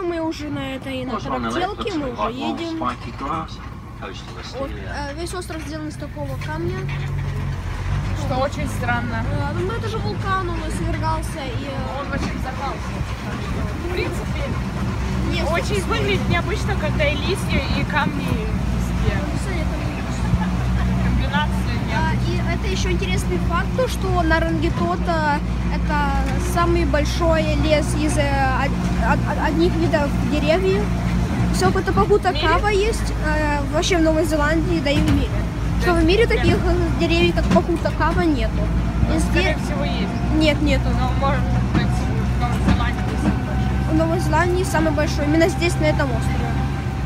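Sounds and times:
people talking: 0:00.0 - 0:07.0, 0:08.1 - 0:14.6, 0:15.2 - 0:46.7
tractor engine running: 0:00.0 - 0:47.0
voices: 0:00.0 - 0:47.0.

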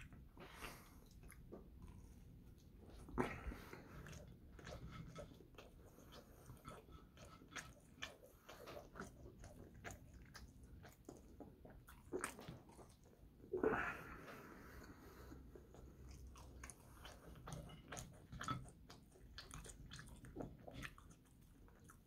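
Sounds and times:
person chewing crunchy fries: 0:00.5 - 0:13.2, 0:15.6 - 0:22.0.

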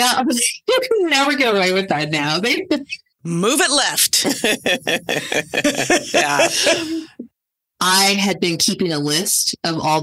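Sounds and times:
women speaking: 0:00.0 - 0:04.5, 0:05.9 - 0:07.1, 0:07.8 - 0:10.0
women laughing: 0:04.2 - 0:07.1.

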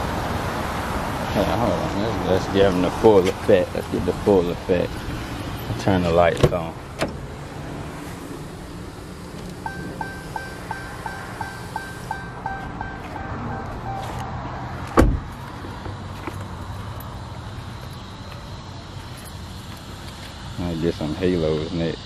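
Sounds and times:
car door shutting: 0:06.0 - 0:07.2, 0:09.2 - 0:15.7
low steady hum: 0:08.0 - 0:14.3
car warning chime pinging: 0:09.6 - 0:14.9.

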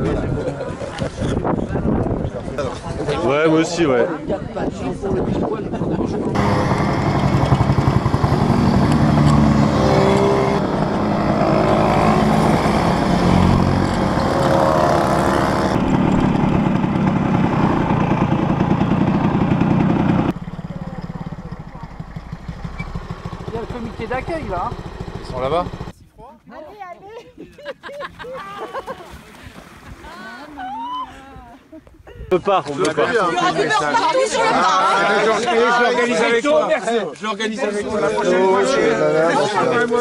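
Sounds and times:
moped and motorcycle engines: 0:06.3 - 0:25.9
voices: 0:20.6 - 0:29.4, 0:30.0 - 0:40.0.

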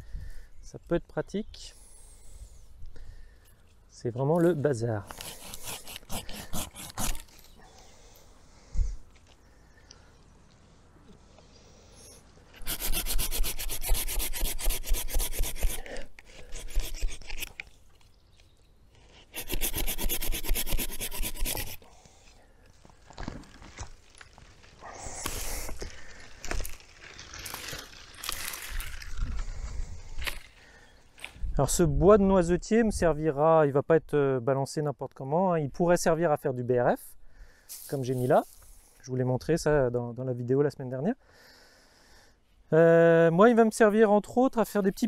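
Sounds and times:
branches rustling and scraping: 0:03.6 - 0:07.6, 0:12.2 - 0:31.5, 0:37.7 - 0:39.0
handsaw cutting stems: 0:05.0 - 0:07.5, 0:12.5 - 0:17.7, 0:19.0 - 0:21.9.

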